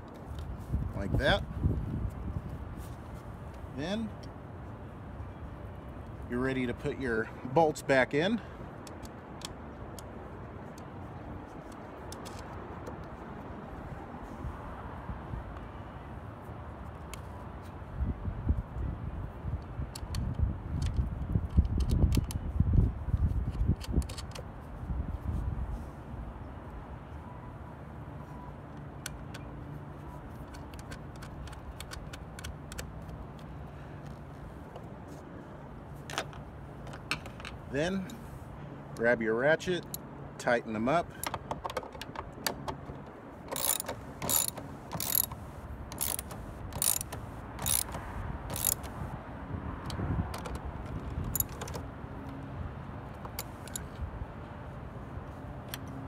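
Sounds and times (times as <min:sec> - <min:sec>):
outdoor background noise: 0:00.0 - 0:56.0
bolts being threaded by hand: 0:23.1 - 0:24.7, 0:28.7 - 0:35.2, 0:36.0 - 0:38.3, 0:38.9 - 0:49.1, 0:49.8 - 0:54.1.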